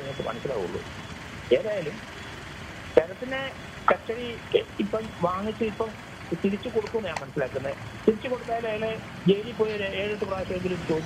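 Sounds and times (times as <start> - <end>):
low road traffic noise: 0.0 - 11.0
person speaking: 3.0 - 11.0.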